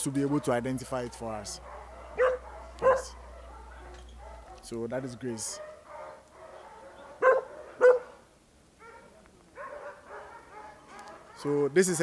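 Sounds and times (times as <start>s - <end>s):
dogs barking: 0.0s - 11.8s.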